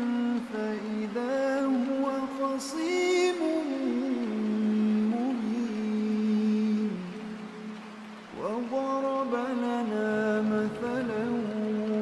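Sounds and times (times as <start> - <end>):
man reciting melodically: 0.0 - 7.5, 8.4 - 12.0.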